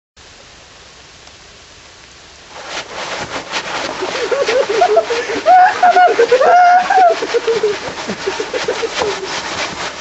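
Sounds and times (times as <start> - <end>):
steady hiss: 0.2 - 10.0
crunching and rustling: 2.5 - 10.0.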